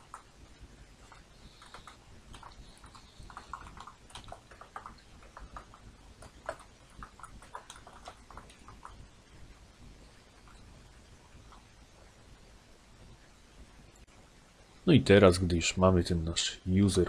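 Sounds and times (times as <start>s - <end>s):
typing on computer keyboard: 1.0s - 9.0s.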